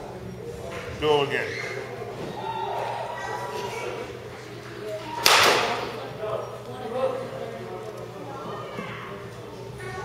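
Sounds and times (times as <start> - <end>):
baseball bat striking ball: 5.2 - 6.0.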